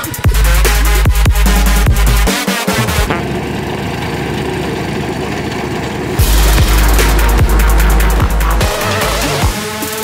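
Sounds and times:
bass-heavy electronic music: 0.0s - 3.6s, 6.2s - 10.0s
plate compactor engine rattling: 0.0s - 9.3s.

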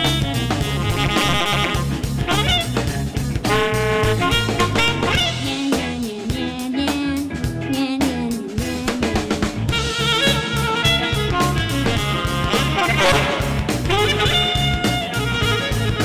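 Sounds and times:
bass guitar: 0.0s - 16.0s
drum kit beat: 0.0s - 16.0s
electric guitar: 0.0s - 16.0s
saxophone: 0.0s - 16.0s.

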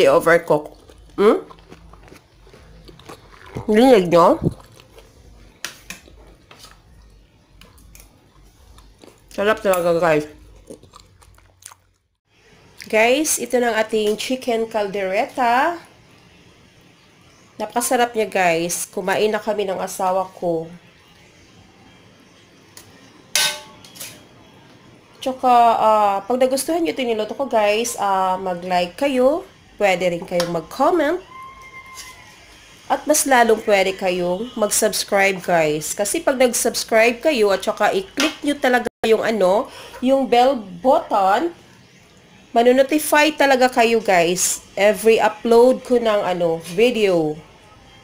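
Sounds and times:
metal ladle striking steel tray: 23.3s - 24.2s.

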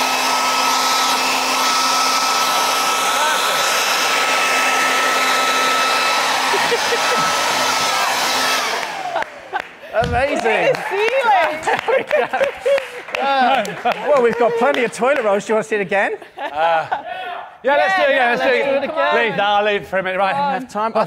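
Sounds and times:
fan spinning down: 0.0s - 12.5s
leaf blower running: 0.0s - 14.3s.

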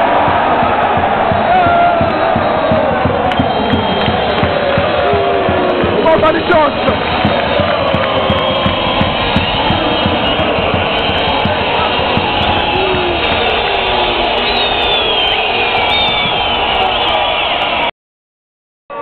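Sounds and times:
irregular beats: 0.0s - 13.9s
crowd chanting and cheering: 0.0s - 17.9s.

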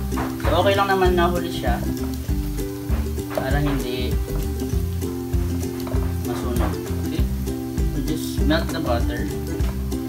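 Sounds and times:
background music: 0.0s - 10.0s
food sizzling in a wok: 0.0s - 10.0s.

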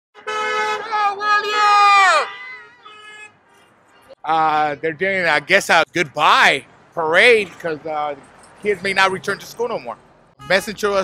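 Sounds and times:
car horns honking: 0.2s - 6.5s, 8.3s - 11.0s
people calling: 0.8s - 2.5s.

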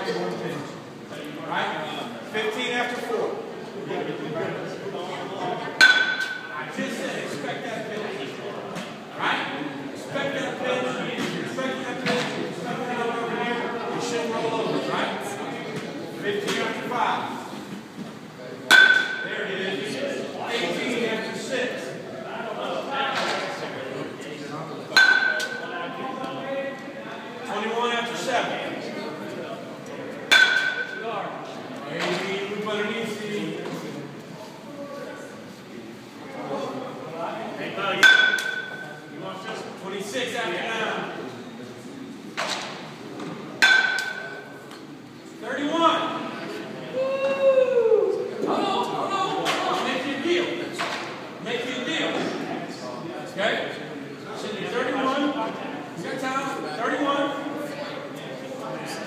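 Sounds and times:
metal bat hitting baseball: 5.8s - 6.5s, 18.7s - 19.3s, 25.0s - 25.6s, 30.3s - 31.0s, 38.0s - 38.9s, 43.6s - 44.4s.

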